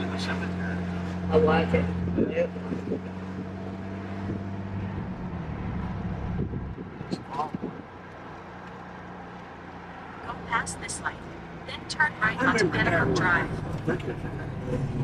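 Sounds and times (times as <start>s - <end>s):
car engine drone: 0.0s - 15.0s
road noise inside car: 0.0s - 15.0s.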